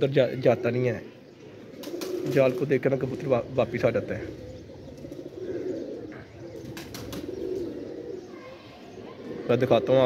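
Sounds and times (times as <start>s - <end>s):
pigeons cooing: 0.0s - 10.0s
wing flaps: 1.8s - 2.6s, 6.6s - 7.7s.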